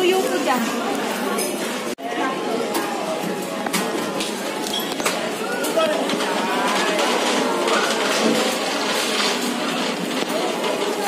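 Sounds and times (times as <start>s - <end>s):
indistinct crowd hubbub: 0.0s - 11.0s.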